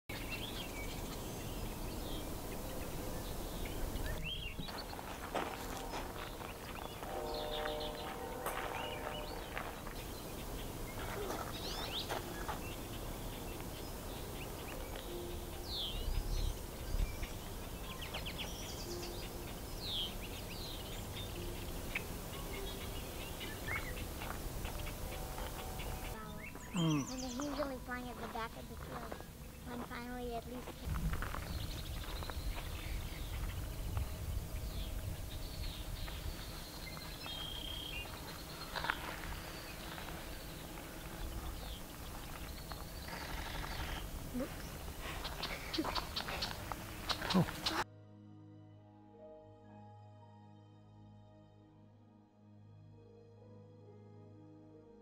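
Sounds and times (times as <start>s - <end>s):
small birds chirping: 0.1s - 47.8s
steady background hiss: 0.1s - 47.9s.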